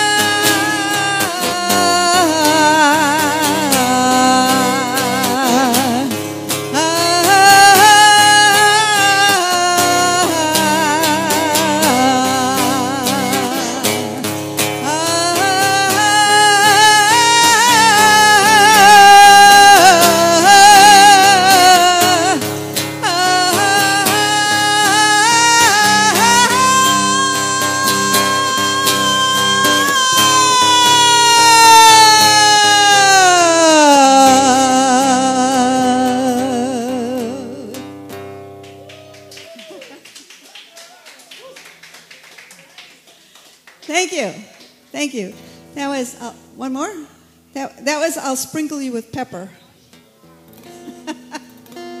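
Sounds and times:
soft guitar playing: 0:00.0 - 0:39.4, 0:43.9 - 0:52.0.

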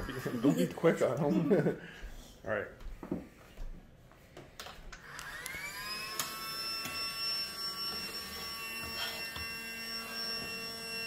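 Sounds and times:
toy vacuum motor whine: 0:00.0 - 0:01.1, 0:05.0 - 0:11.0.

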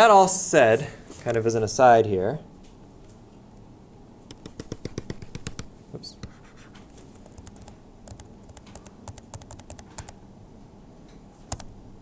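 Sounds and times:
computer keyboard clicks and taps: 0:04.3 - 0:05.7, 0:07.2 - 0:10.2, 0:11.5 - 0:11.7.

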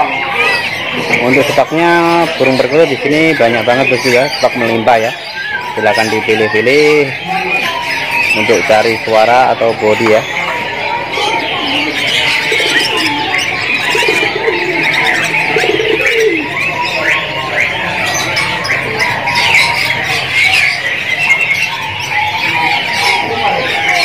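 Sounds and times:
birds chirping: 0:00.0 - 0:24.0
doves cooing: 0:00.0 - 0:24.0.

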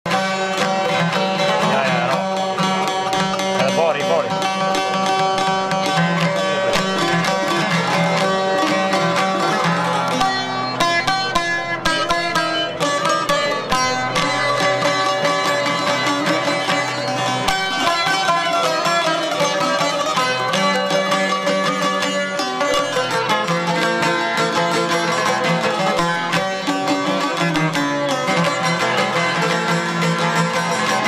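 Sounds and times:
plucked lutes: 0:00.1 - 0:31.0.

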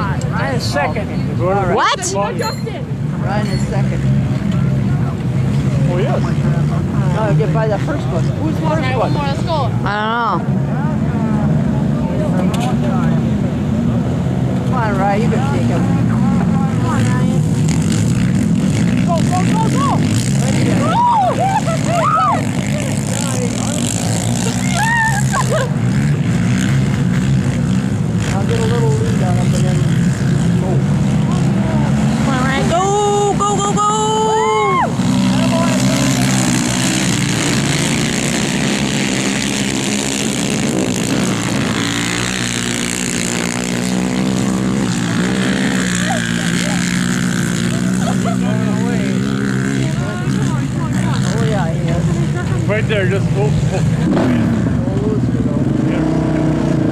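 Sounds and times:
quad engines revving: 0:00.0 - 0:56.9
spectators calling out: 0:19.2 - 0:25.9, 0:31.7 - 0:37.1, 0:45.0 - 0:52.7.

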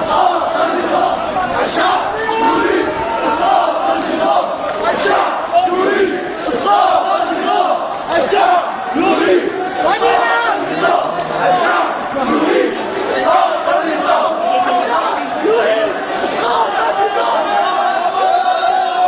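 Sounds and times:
crowd shouting together: 0:00.0 - 0:19.0.

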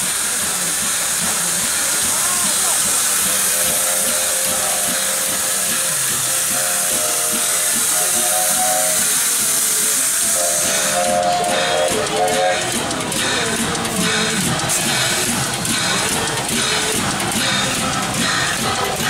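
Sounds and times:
steam hissing: 0:00.0 - 0:19.0
background music: 0:10.3 - 0:19.0.

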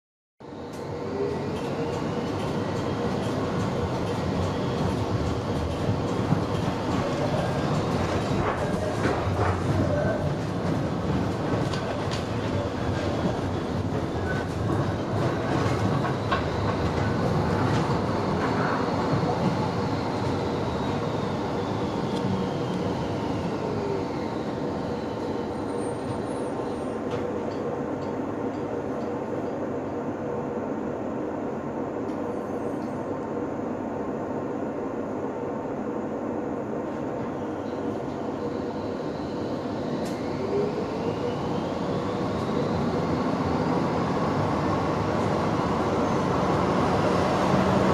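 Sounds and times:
tram motor whine: 0:00.4 - 0:27.4, 0:37.2 - 0:47.9
tram wheel and running noise: 0:00.4 - 0:47.9.

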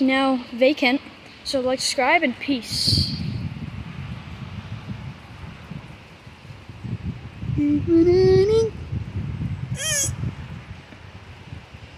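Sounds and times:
low steady rumble: 0:02.0 - 0:11.9.

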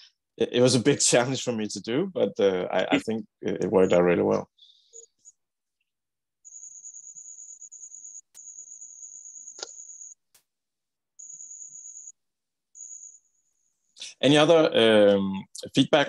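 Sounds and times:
cricket trilling: 0:06.4 - 0:10.2, 0:11.2 - 0:12.1.

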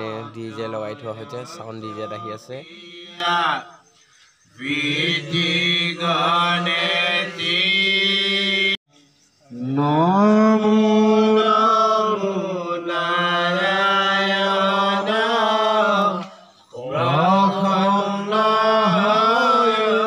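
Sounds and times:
man chanting into a microphone: 0:00.0 - 0:03.6.

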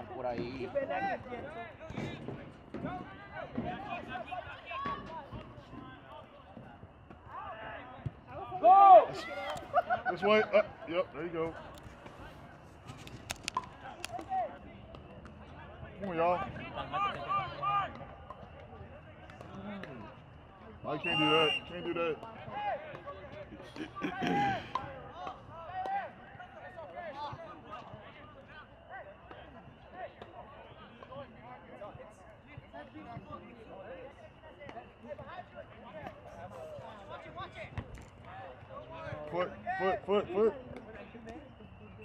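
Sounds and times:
players and spectators shouting: 0:02.8 - 0:06.5, 0:07.2 - 0:12.2, 0:16.1 - 0:18.2, 0:19.5 - 0:31.9.

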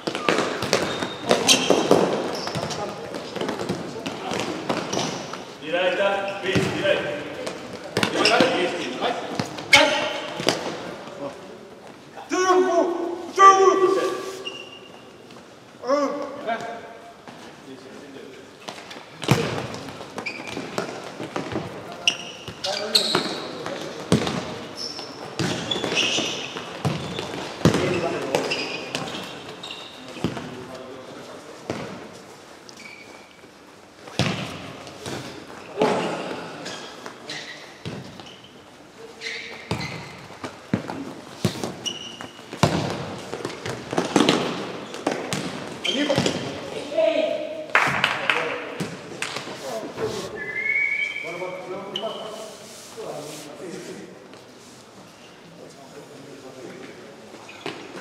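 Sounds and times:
ball kicked and bouncing: 0:42.5 - 0:46.5.

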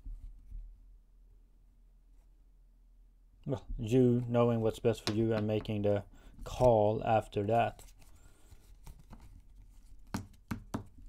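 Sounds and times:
cards rustling and clicking: 0:06.5 - 0:11.0.

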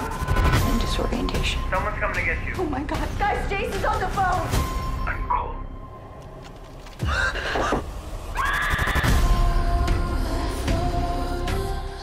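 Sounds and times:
shrill screeching cries: 0:08.4 - 0:09.2.

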